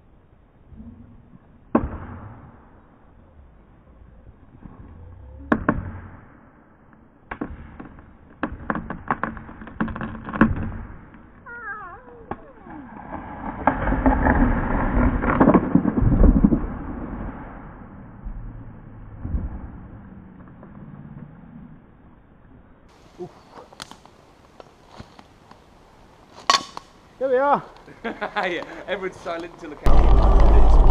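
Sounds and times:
tree wood creaking: 0:00.7 - 0:22.2, 0:27.7 - 0:30.9
tree crashing to ground: 0:12.3 - 0:17.5, 0:29.9 - 0:30.9.

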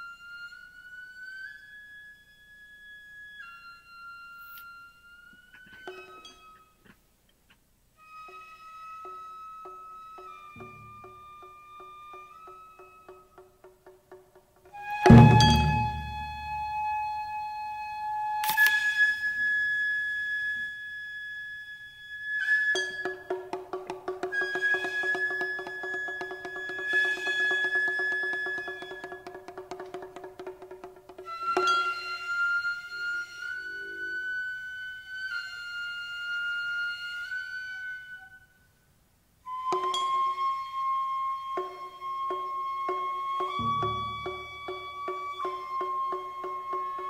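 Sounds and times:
high transverse flute: 0:00.0 - 0:06.8, 0:08.0 - 0:13.7, 0:14.7 - 0:29.9, 0:31.2 - 0:47.0
long held wind tones: 0:14.7 - 0:18.4, 0:31.4 - 0:46.8.

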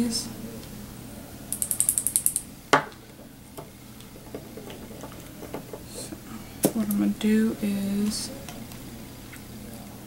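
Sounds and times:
sharp click: 0:01.5 - 0:02.5
tiny ratchet-like clicks: 0:01.5 - 0:02.5.

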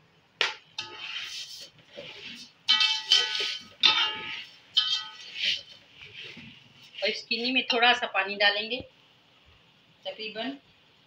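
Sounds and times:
gritty scraping of sugar: 0:00.8 - 0:07.7
spatula knocking on metal pot: 0:02.7 - 0:05.6.

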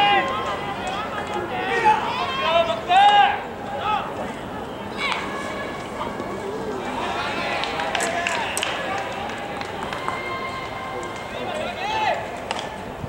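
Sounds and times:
voices shouting and calling: 0:00.0 - 0:12.9.

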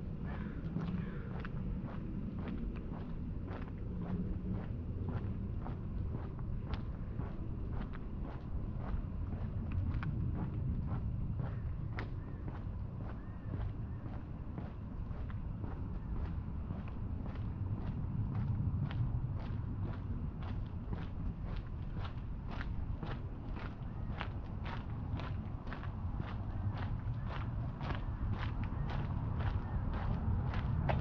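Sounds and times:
low steady rumble: 0:00.0 - 0:31.0.

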